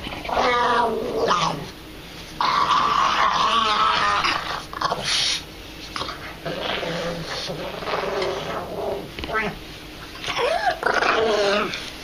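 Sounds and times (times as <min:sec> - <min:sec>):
dog growling: 0:00.0 - 0:01.7, 0:02.4 - 0:05.4, 0:06.0 - 0:11.9.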